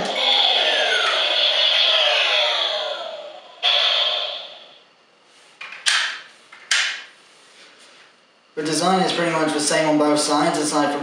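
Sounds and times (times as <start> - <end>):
toy electronic tones gliding down: 0.0 - 4.8.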